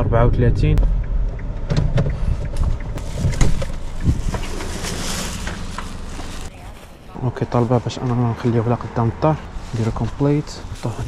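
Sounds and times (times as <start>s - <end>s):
low wind rumble on microphone: 0.0s - 7.1s.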